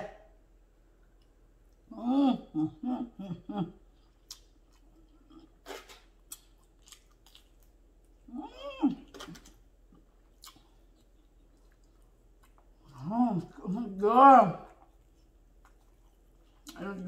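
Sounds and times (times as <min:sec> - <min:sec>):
person humming mmm: 0:01.9 - 0:03.8
chewing with wet mouth clicks: 0:04.0 - 0:08.3, 0:09.1 - 0:13.6, 0:14.7 - 0:16.9.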